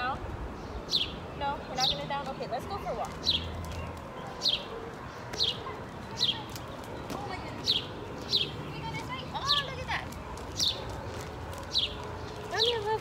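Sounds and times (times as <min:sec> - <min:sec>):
bird calling: 0:00.6 - 0:13.0.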